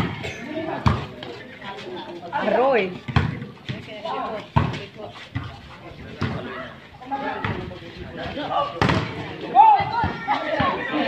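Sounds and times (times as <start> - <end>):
players calling out: 6.0 - 11.0
volleyball hits: 8.7 - 10.8.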